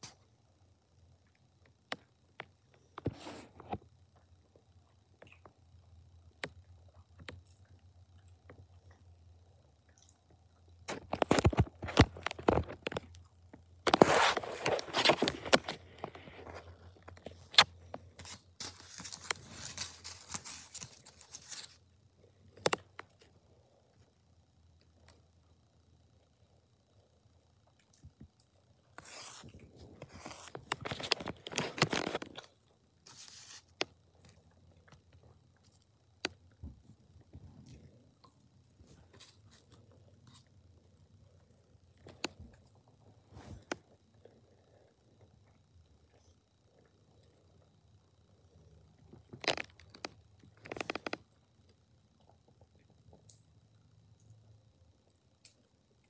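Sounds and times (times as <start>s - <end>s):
person chewing and crunching: 5.0s - 21.8s.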